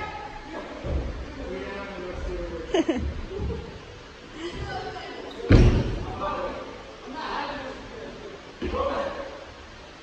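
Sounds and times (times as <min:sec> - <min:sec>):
heavy thud in large hall: 0:05.4 - 0:06.3.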